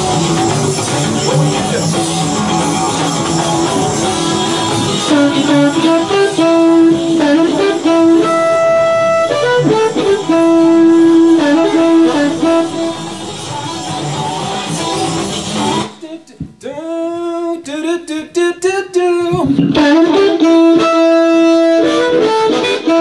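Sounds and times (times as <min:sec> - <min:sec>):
rhythmic blues guitar: 0:00.0 - 0:23.0
harmonica: 0:00.1 - 0:16.2.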